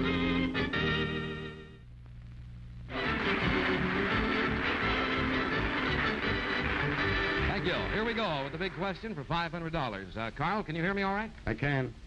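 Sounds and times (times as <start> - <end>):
game show theme music: 2.9 - 9.3.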